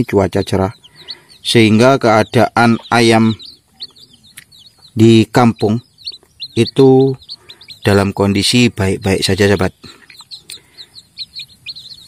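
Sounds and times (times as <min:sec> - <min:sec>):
chicks peeping: 0:00.0 - 0:12.0.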